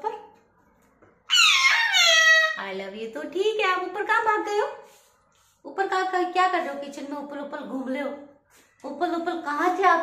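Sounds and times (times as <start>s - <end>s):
parakeet call sliding down: 1.3s - 2.6s.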